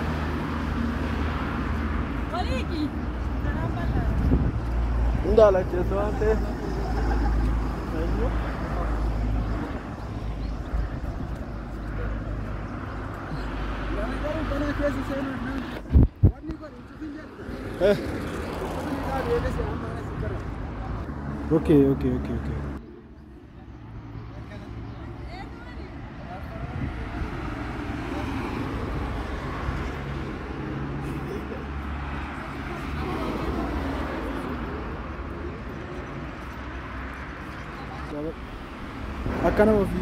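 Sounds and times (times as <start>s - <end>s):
road traffic rush: 0.0s - 40.0s.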